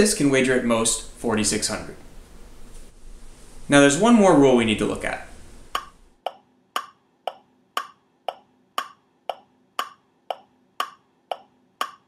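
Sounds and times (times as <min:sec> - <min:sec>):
mechanical ticking: 0:05.8 - 0:12.0.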